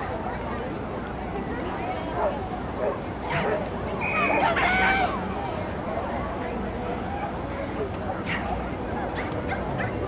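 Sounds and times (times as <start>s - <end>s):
outdoor background noise: 0.0s - 10.0s
voices: 0.0s - 10.0s.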